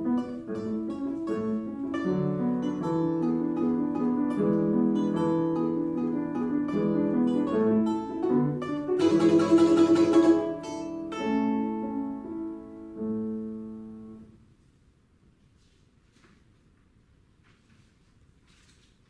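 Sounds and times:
balalaika playing: 0.0 - 12.4
piano accompaniment: 0.0 - 14.4.

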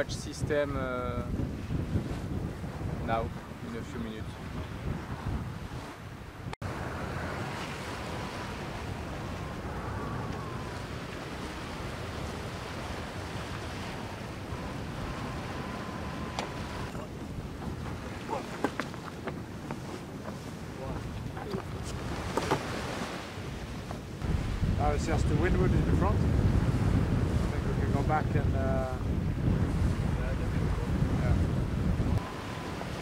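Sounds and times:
wind and sea water rushing: 0.0 - 33.0
wind buffeting microphone: 0.0 - 33.0.

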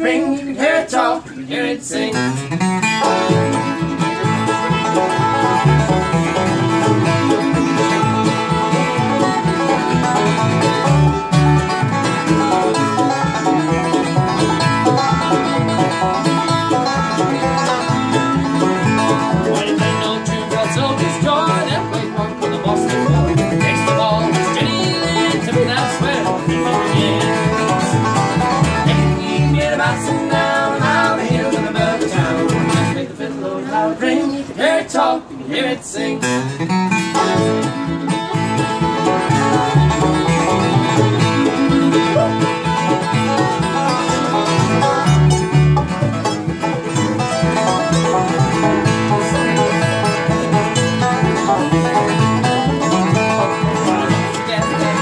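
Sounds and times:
acoustic guitar: 0.0 - 55.0
banjo: 0.0 - 55.0
mandolin: 0.0 - 55.0
upright bass: 0.0 - 55.0
fiddle: 0.1 - 34.6, 35.4 - 55.0.

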